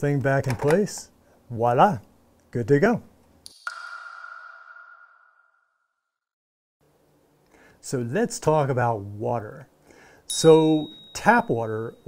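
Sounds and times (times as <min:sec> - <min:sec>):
bell-like ping: 0:03.5 - 0:06.1, 0:10.3 - 0:12.0.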